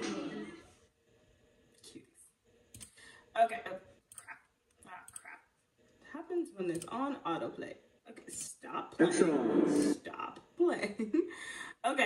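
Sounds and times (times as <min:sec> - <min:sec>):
computer mouse clicks: 0:02.7 - 0:03.0, 0:04.1 - 0:05.4, 0:06.7 - 0:07.0.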